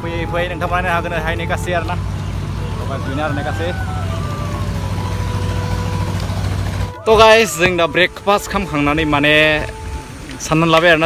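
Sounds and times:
road noise hiss: 0:00.0 - 0:11.0
vehicle engine humming: 0:00.0 - 0:11.0.

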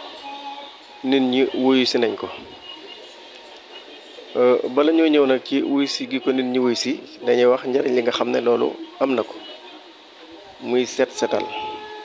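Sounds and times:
man speaking: 0:01.0 - 0:02.4, 0:10.6 - 0:11.7.

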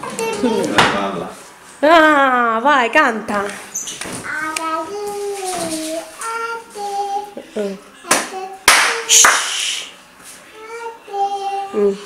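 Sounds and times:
small child singing: 0:00.0 - 0:00.8, 0:04.2 - 0:09.2, 0:10.5 - 0:12.0
sharp hand claps: 0:08.1 - 0:09.6.

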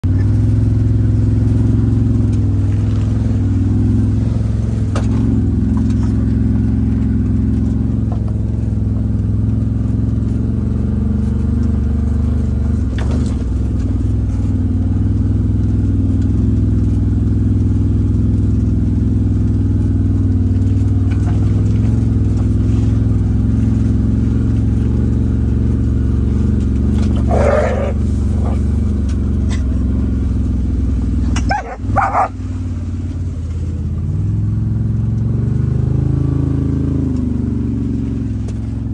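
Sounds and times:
utility vehicle engine droning: 0:00.0 - 0:38.9.

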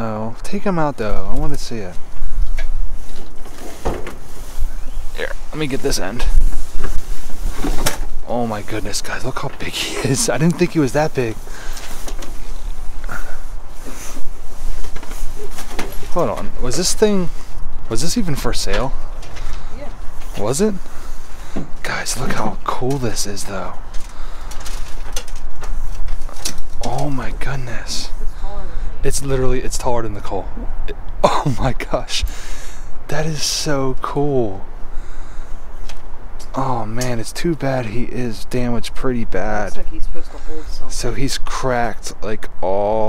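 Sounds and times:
items rustling and knocking: 0:02.0 - 0:04.8, 0:06.3 - 0:08.2, 0:11.6 - 0:17.0, 0:18.6 - 0:20.5, 0:23.8 - 0:27.0
handling knocks and rustles: 0:13.8 - 0:16.9.

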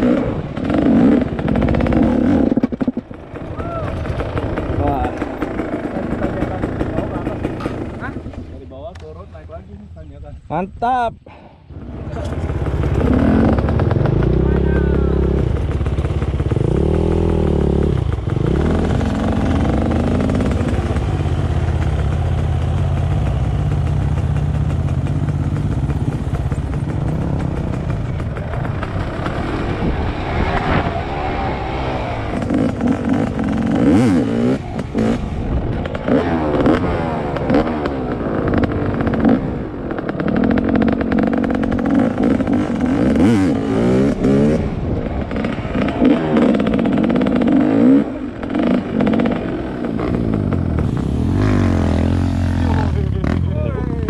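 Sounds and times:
dirt bike engine revving: 0:00.0 - 0:08.5, 0:11.7 - 0:54.0.

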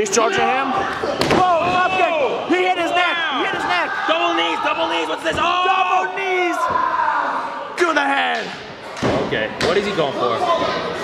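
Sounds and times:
men calling out excitedly: 0:01.4 - 0:08.3.

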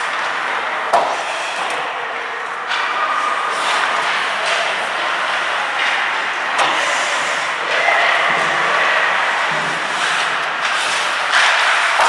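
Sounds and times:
hockey sticks hitting puck: 0:02.7 - 0:07.0, 0:07.6 - 0:12.0
skates scraping on ice: 0:08.5 - 0:12.0.

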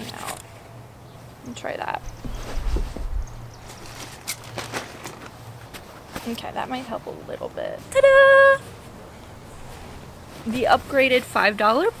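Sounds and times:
fabric and stuffing rustling: 0:01.8 - 0:12.0
short scratchy rustles: 0:02.2 - 0:06.4.

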